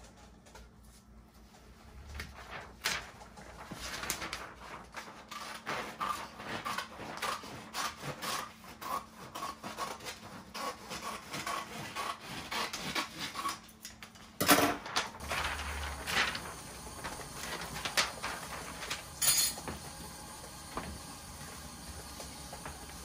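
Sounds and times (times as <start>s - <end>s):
stiff paper rustling: 0.0s - 8.2s, 14.8s - 19.8s
scissors snipping paper: 5.0s - 13.7s.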